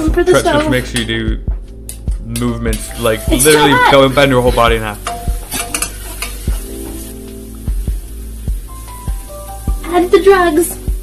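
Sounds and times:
food sizzling in frying pan: 0.0 - 11.0
utensil stirring in pan: 1.9 - 11.0.

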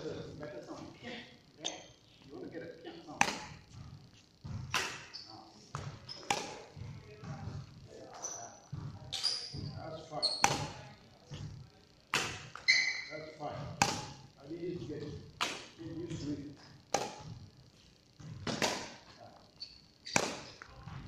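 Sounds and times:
rackets striking shuttlecock: 3.2 - 3.7, 4.5 - 6.8, 10.3 - 10.8, 12.1 - 13.1, 13.8 - 14.3, 16.9 - 17.4, 18.4 - 19.1, 20.0 - 20.7.

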